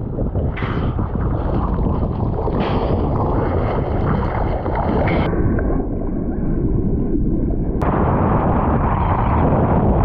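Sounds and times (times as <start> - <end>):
wind buffeting microphone: 0.0 - 10.0
water rushing and splashing: 1.6 - 5.3.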